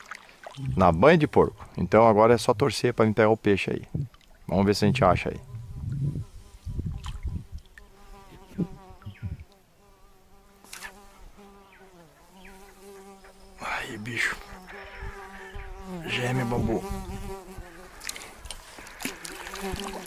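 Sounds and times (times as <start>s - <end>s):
insect buzzing: 4.6s - 20.0s.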